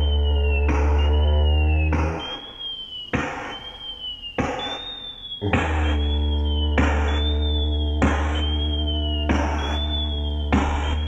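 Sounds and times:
didgeridoo drone: 0.0s - 2.4s, 5.4s - 11.0s.

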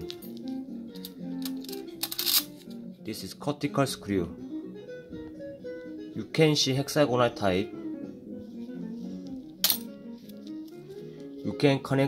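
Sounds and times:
guitar music: 0.0s - 11.6s.

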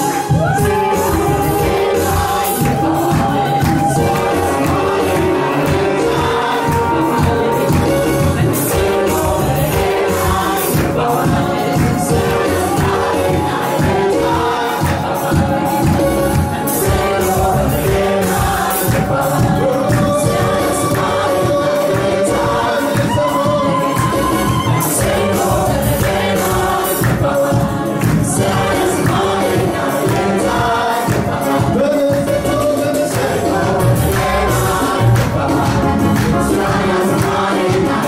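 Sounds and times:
group singing gospel song: 0.0s - 38.0s
keyboard with low beat: 0.4s - 38.0s.

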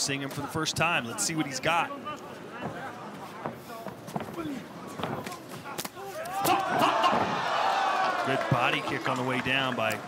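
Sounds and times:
crowd cheering and shouting: 6.0s - 10.0s.

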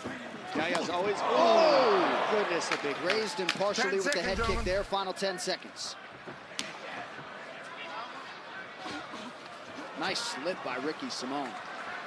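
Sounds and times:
arena crowd shouting: 0.0s - 4.4s, 5.0s - 12.0s.

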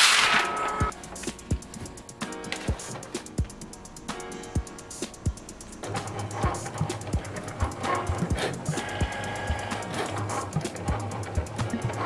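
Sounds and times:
cutting machine motors humming: 0.0s - 4.5s, 5.1s - 12.0s
guitar and drum music: 0.0s - 12.0s.

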